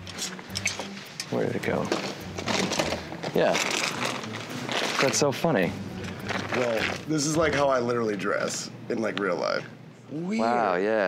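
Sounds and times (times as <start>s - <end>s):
garments rustling: 1.8s - 5.4s.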